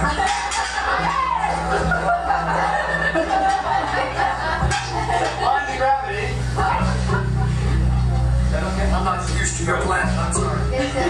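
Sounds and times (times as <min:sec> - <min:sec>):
amplified guitars and bass: 0:00.0 - 0:11.0
people talking: 0:00.0 - 0:11.0.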